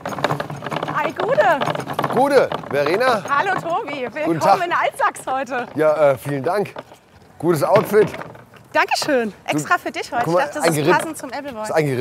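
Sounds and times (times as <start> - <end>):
bicycle clattering over cobblestones: 0.0 - 12.0.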